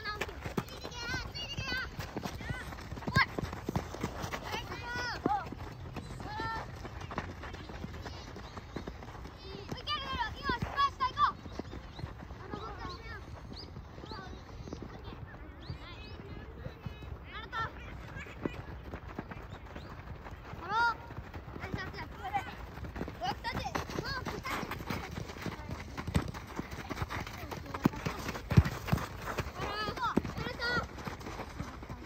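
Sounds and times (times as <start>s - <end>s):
running feet on gravel: 0.0s - 16.4s, 17.0s - 32.0s.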